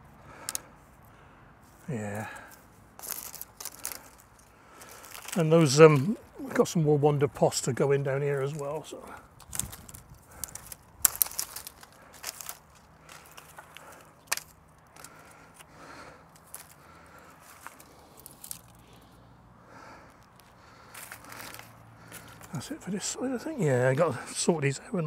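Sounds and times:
dry bean stalks snapping and crackling: 0:00.3 - 0:00.7, 0:02.3 - 0:06.6, 0:08.4 - 0:19.2, 0:19.8 - 0:22.7.

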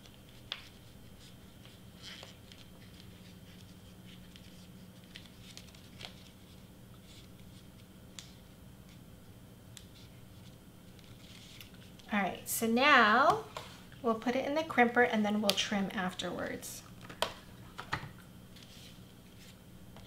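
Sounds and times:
low steady hum: 0:00.0 - 0:20.0
paper wrapper rustling: 0:00.1 - 0:07.8.

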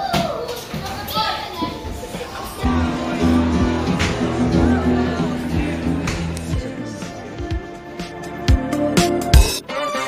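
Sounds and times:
children's voices: 0:00.0 - 0:07.4
pop song playing: 0:02.6 - 0:10.0.

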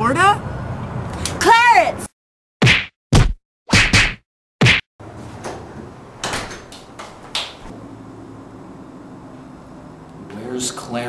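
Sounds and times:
comedy whacking hit effects: 0:02.6 - 0:04.9.

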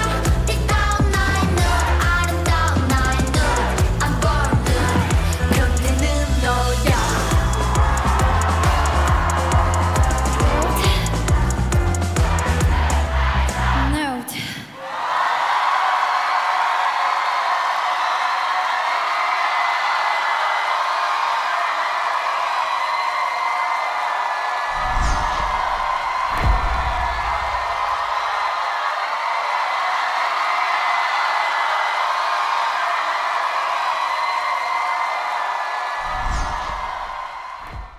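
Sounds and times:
crowd cheering and screaming: 0:00.0 - 0:37.9
low booms: 0:24.7 - 0:28.0.

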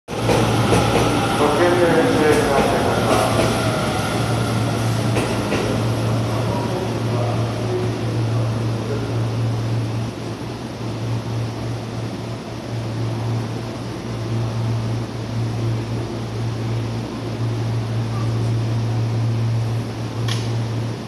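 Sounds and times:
electric train passing: 0:00.1 - 0:21.0.

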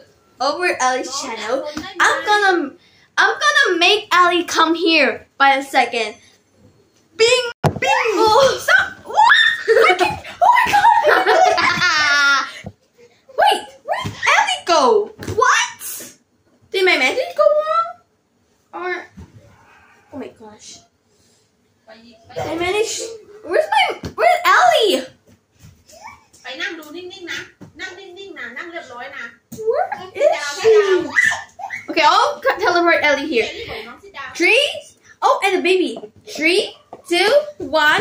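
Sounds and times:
girls laughing loudly: 0:09.0 - 0:12.6
whining vocal sounds: 0:19.3 - 0:20.9.

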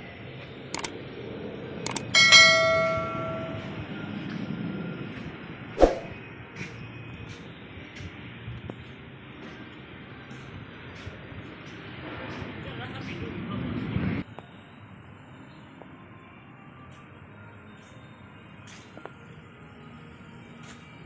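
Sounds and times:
ringing metallic clang: 0:01.9 - 0:03.8.

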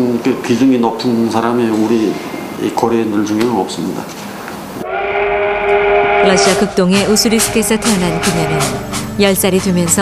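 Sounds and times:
steam locomotive whistle: 0:04.8 - 0:09.0.

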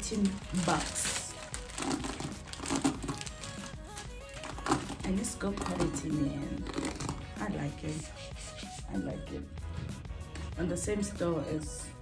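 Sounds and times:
plastic packaging crinkling: 0:00.0 - 0:07.4
soft background music: 0:00.0 - 0:12.0.

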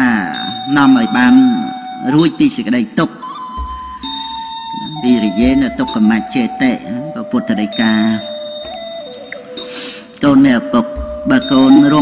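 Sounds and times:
soft synthesizer tones: 0:00.0 - 0:12.0.

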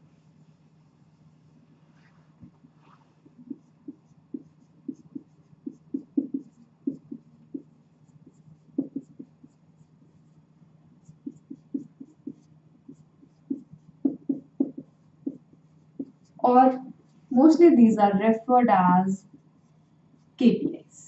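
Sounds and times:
faint low hum: 0:00.0 - 0:21.0
marker pen writing on whiteboard: 0:02.3 - 0:17.3, 0:19.2 - 0:20.4.

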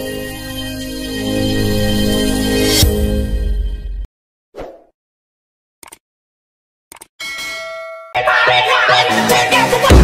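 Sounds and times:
bright bell ding: 0:07.2 - 0:08.2.

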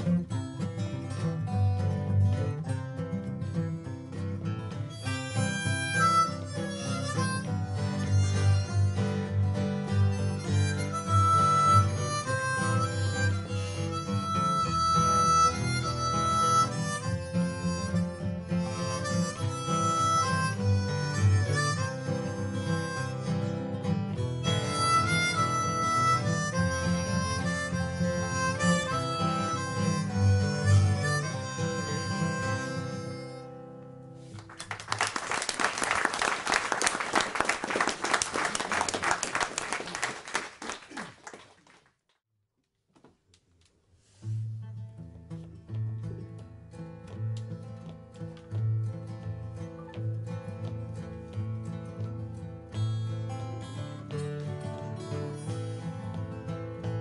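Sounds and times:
acoustic guitars strumming: 0:00.0 - 0:34.6, 0:44.2 - 0:57.0
harmonica melody: 0:04.7 - 0:34.0, 0:48.6 - 0:57.0.

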